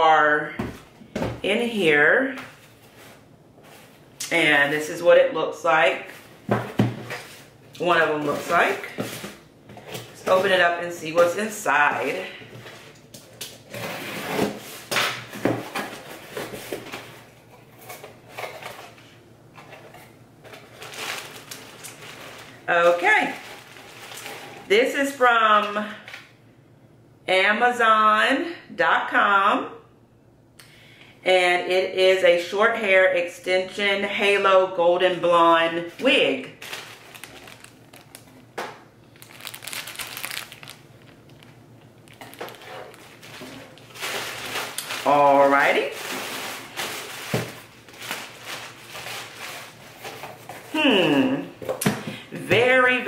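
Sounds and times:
packaging tearing and rustling: 20.5 - 24.6, 36.6 - 50.7
plastic bag crinkling: 20.5 - 24.7, 36.1 - 50.8.

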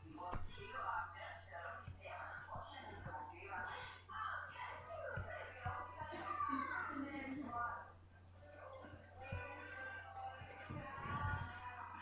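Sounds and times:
soft low thumps: 0.0 - 7.7, 8.9 - 12.0
faint voices: 0.0 - 12.0
steady low hum: 0.0 - 12.0.

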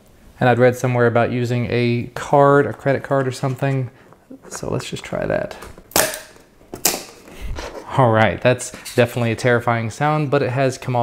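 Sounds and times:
person speaking: 0.4 - 5.8, 7.4 - 11.0.

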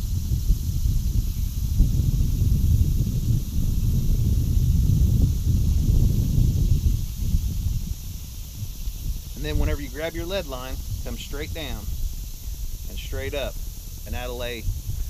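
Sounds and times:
faint hiss: 0.0 - 15.0
wind buffeting microphone: 0.0 - 15.0.

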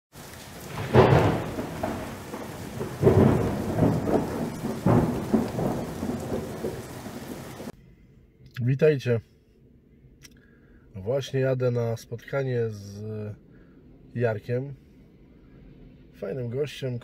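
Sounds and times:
rain hiss: 0.1 - 7.8
rolling thunder: 0.2 - 7.8.

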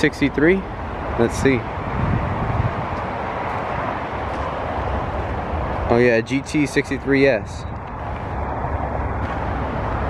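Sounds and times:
outdoor rumble with hiss: 0.0 - 10.0.

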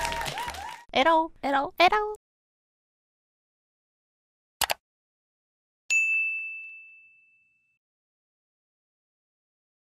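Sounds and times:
bell-like ding: 5.9 - 7.8.

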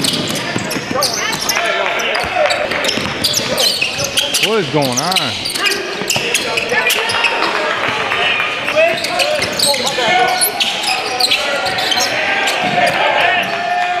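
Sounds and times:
basketball bouncing on court: 0.0 - 4.4, 5.9 - 10.5, 11.2 - 13.5
players and spectators calling out: 0.0 - 14.0.

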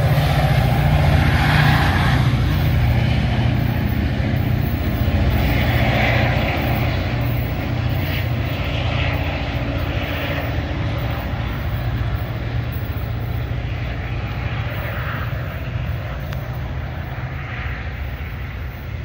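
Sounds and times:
diesel locomotive drone: 0.0 - 19.0.

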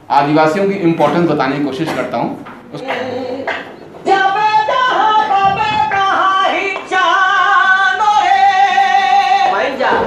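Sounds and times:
man singing in high shrill voice: 2.7 - 9.6.

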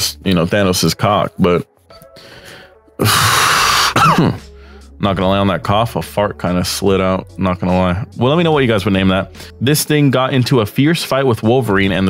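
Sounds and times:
man clearing his throat: 3.0 - 4.5
man coughing: 3.0 - 4.5.

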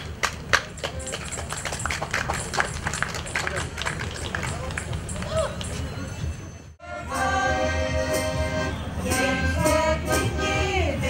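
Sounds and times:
scattered applause: 0.0 - 5.9.

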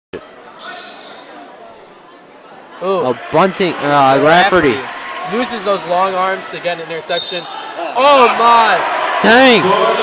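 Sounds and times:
noise from basketball court: 0.1 - 3.9
spectators chattering: 0.1 - 10.0.

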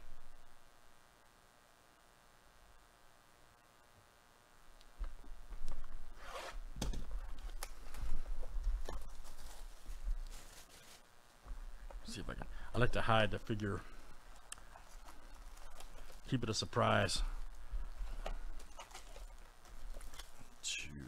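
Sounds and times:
wrapping tearing and crackling: 9.0 - 11.1, 14.6 - 16.4, 18.5 - 20.6.

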